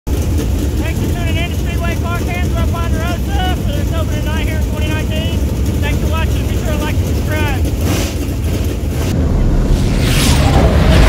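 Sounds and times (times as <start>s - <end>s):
race car engines rumbling: 0.0s - 11.0s
man talking: 0.8s - 7.7s.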